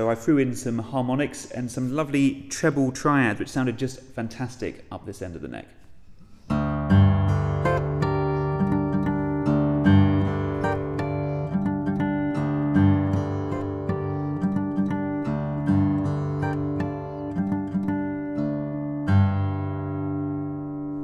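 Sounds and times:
fingerstyle acoustic guitar: 6.2s - 21.0s.

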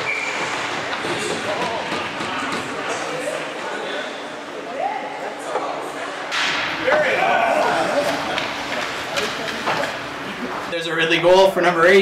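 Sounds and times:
crowd cheering and shouting: 6.7s - 8.8s.

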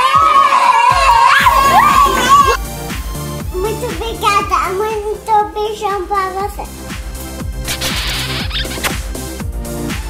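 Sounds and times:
child shouting: 0.0s - 2.6s
background music: 0.9s - 10.0s.

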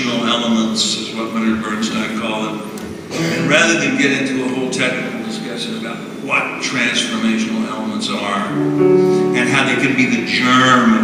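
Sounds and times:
instrumental accompaniment: 2.9s - 11.0s.

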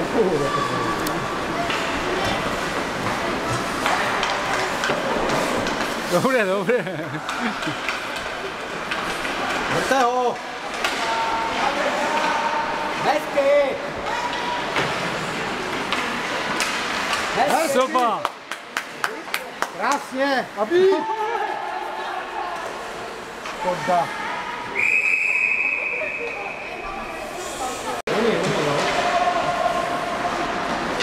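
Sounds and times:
ice rink crowd noise: 0.0s - 31.0s
murmur of spectators: 0.0s - 31.0s.

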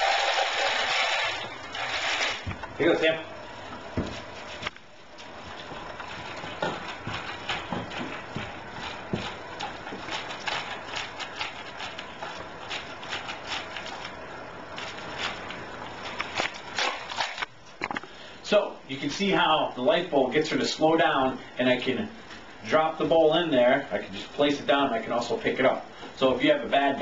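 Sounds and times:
dog crunching dry kibble: 5.3s - 17.5s.

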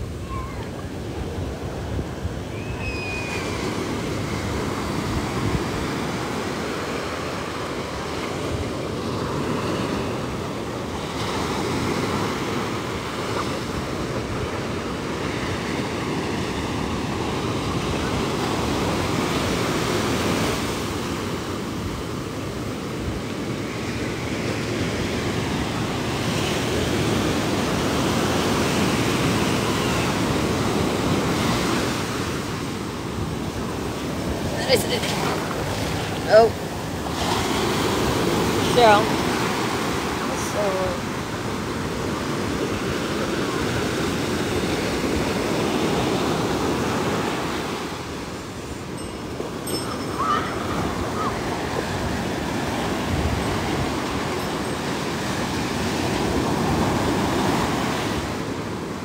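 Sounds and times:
ocean surf breaking on sand: 0.0s - 59.0s.

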